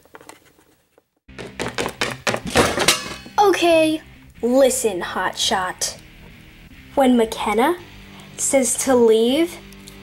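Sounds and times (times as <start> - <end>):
thuds and knocks from scuffle: 1.4 - 3.2.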